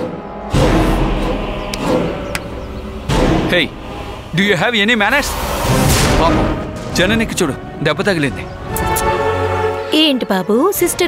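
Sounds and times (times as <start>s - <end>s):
low booming hits: 0.0s - 7.8s
dramatic background music: 0.0s - 11.0s.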